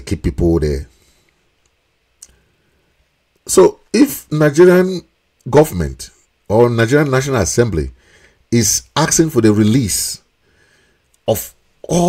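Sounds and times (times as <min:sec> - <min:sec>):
faint room hiss: 0:00.0 - 0:12.0
faint click: 0:01.2 - 0:02.4.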